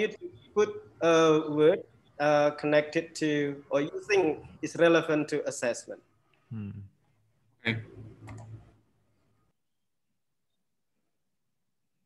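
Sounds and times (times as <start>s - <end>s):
man speaking over video call: 0.0s - 6.9s, 7.7s - 8.0s.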